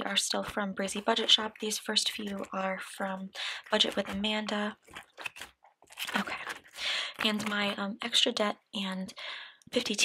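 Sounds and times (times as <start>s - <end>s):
paper bills handled: 0.8s - 7.8s
plastic pockets crinkling: 0.8s - 7.9s.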